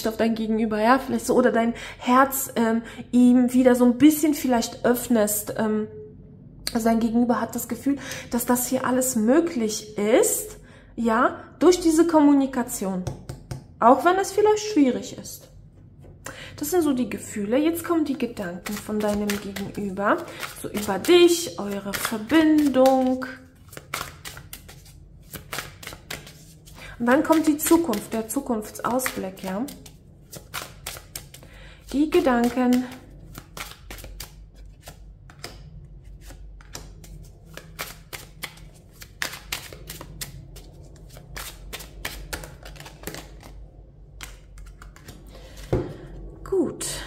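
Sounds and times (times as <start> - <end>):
cards being shuffled: 18.4 - 43.6, 44.2 - 45.8.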